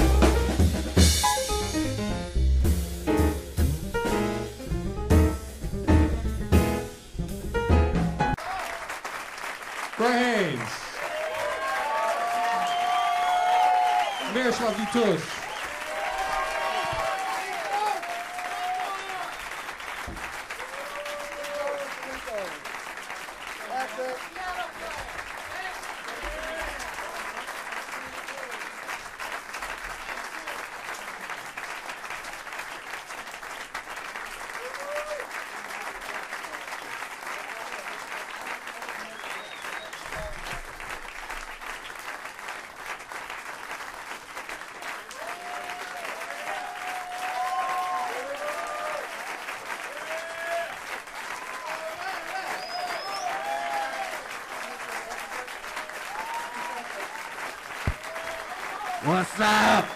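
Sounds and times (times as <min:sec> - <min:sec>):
audience applauding: 0:08.3 - 0:59.9
shouts and whoops: 0:11.0 - 0:19.4, 0:20.6 - 0:22.0, 0:34.6 - 0:35.3, 0:45.1 - 0:49.2, 0:49.9 - 0:50.8, 0:51.4 - 0:54.2, 0:56.0 - 0:57.0.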